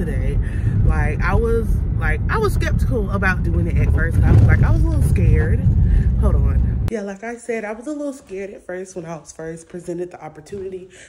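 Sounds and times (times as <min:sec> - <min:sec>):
car road rumble: 0:00.0 - 0:06.9
woman talking: 0:00.0 - 0:11.0.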